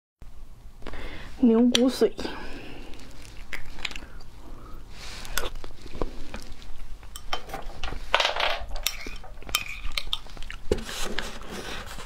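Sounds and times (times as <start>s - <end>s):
chewing and mouth noises: 2.5s - 7.3s, 8.8s - 10.8s.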